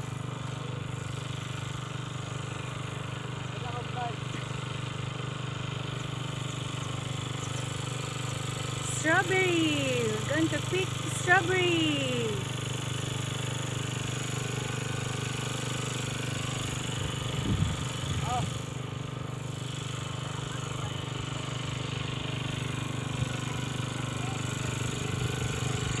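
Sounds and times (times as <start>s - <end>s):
low engine hum: 0.0s - 26.0s.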